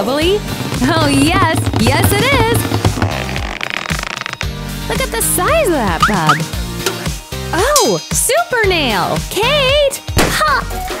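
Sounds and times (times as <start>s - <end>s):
background music: 0.0s - 11.0s
bubble gum bubble blowing: 6.0s - 6.5s.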